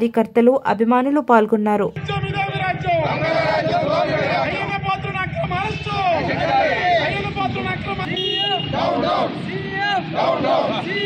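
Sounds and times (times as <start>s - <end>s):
crowd of men shouting slogans: 2.8s - 11.0s.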